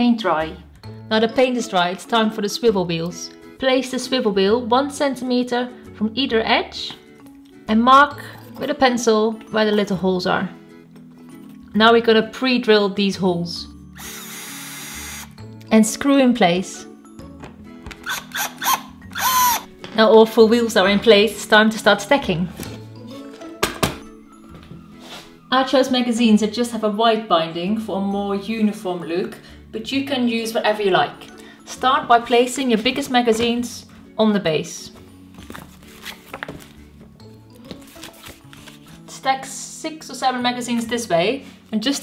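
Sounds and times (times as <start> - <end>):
light background music: 0.0 - 42.0
cordless drill driving screws: 14.0 - 15.4, 18.0 - 19.7.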